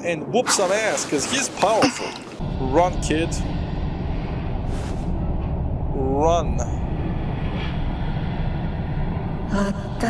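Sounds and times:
low steady rumble: 2.4s - 10.0s.

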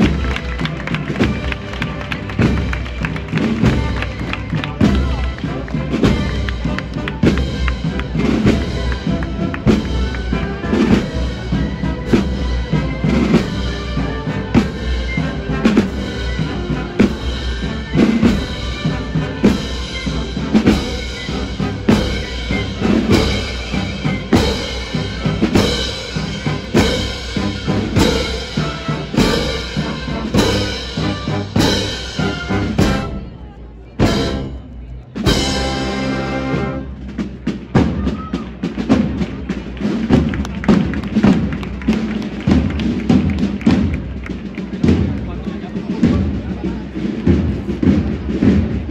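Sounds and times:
heavy drumbeat: 0.0s - 33.3s, 34.0s - 48.9s
murmuring crowd voices: 0.0s - 48.9s
procession band playing slow march: 0.0s - 48.9s.

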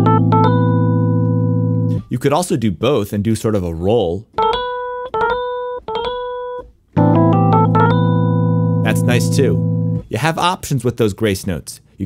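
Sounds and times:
low held keyboard chord: 0.0s - 2.0s, 4.4s - 10.1s
keyboard melody with grace notes: 0.0s - 2.1s, 4.3s - 10.1s.

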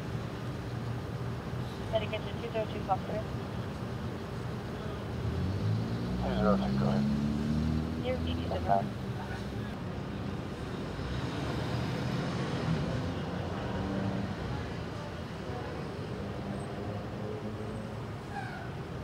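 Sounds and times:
vehicle engines idling: 0.0s - 11.0s
faint voices: 6.2s - 7.1s.

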